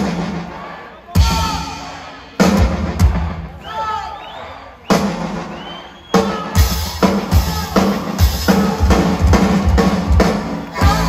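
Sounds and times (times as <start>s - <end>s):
audience whistling: 0.4s - 2.0s, 3.4s - 11.0s.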